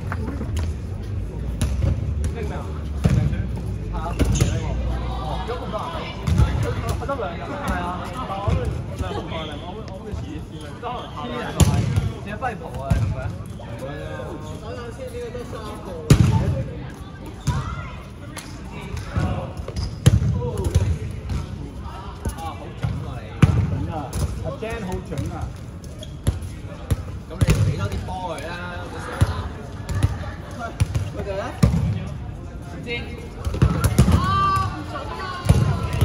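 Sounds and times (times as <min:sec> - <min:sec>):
dodgeballs smacking: 0:01.5 - 0:04.7, 0:06.2 - 0:08.8, 0:11.6 - 0:13.3, 0:16.0 - 0:16.6, 0:18.3 - 0:21.6, 0:22.2 - 0:25.6, 0:26.2 - 0:28.5, 0:29.1 - 0:32.0, 0:33.4 - 0:36.0
players shouting: 0:33.6 - 0:36.0.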